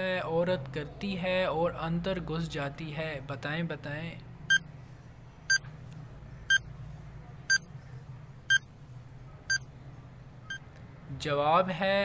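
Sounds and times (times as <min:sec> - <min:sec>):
faint low hum: 0:00.0 - 0:12.0
short electronic beeps: 0:06.5 - 0:06.7, 0:07.5 - 0:07.7.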